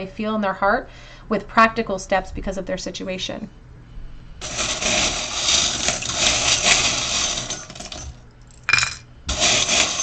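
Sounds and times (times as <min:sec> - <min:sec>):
charms clattering into wooden bowl: 0:04.4 - 0:10.0
metal charms rattling and clinking: 0:05.8 - 0:09.0.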